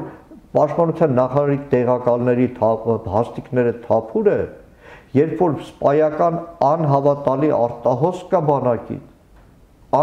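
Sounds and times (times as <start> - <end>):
man speaking: 0.0 - 9.2.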